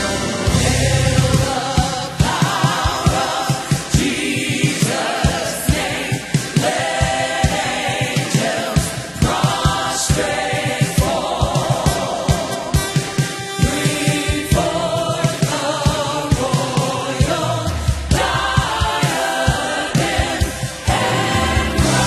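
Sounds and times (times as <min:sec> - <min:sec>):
drum kit playing: 0:00.0 - 0:22.0
gospel choir singing: 0:00.0 - 0:22.0.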